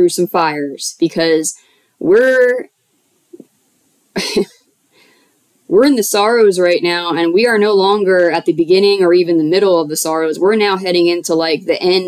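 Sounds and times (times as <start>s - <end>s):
woman coughing: 4.2s - 4.7s.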